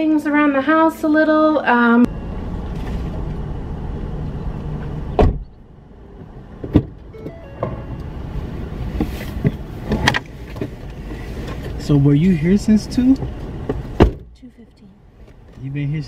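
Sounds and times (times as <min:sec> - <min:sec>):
low rumble inside car: 0:02.0 - 0:16.0
person climbing into car seat: 0:08.8 - 0:11.8.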